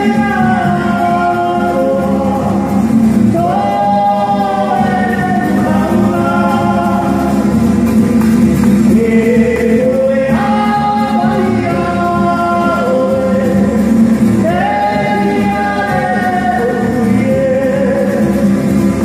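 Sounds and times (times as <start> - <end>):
guitar accompaniment: 0.0 - 19.0
voices singing in harmony: 0.0 - 19.0.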